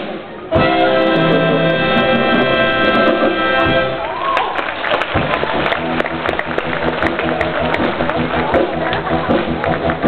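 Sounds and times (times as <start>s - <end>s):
circus band music: 0.0s - 10.0s
tapping percussion beat: 5.1s - 10.0s.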